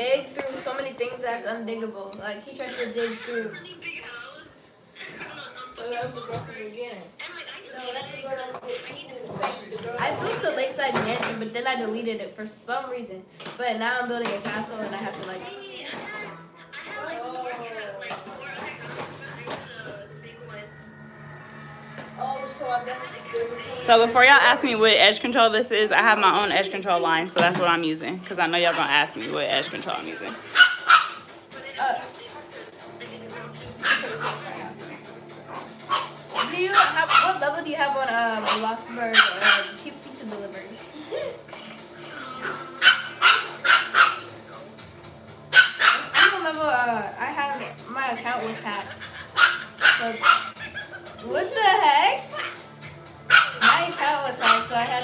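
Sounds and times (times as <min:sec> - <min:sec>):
low voices: 0:16.3 - 0:26.4
dog barking: 0:30.5 - 0:31.3, 0:33.8 - 0:34.5, 0:35.5 - 0:37.4, 0:38.4 - 0:39.8, 0:42.4 - 0:44.4, 0:45.5 - 0:46.4, 0:49.3 - 0:50.6, 0:53.3 - 0:54.8.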